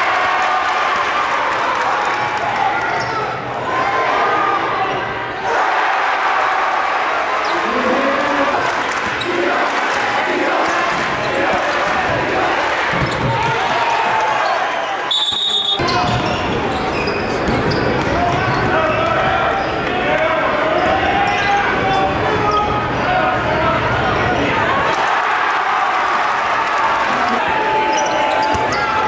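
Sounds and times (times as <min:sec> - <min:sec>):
chatter of many voices: 0:07.4 - 0:14.5, 0:15.8 - 0:29.0.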